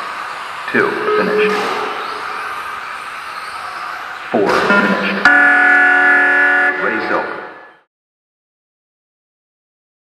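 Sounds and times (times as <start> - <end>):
electronic horn tone over loudspeaker: 0.9 - 2.2, 4.6 - 7.8.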